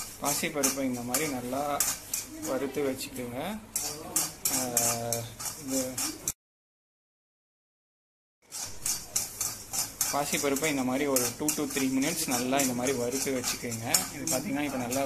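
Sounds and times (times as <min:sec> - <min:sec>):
spatula scraping steel pan: 0:00.0 - 0:06.4, 0:08.5 - 0:15.0.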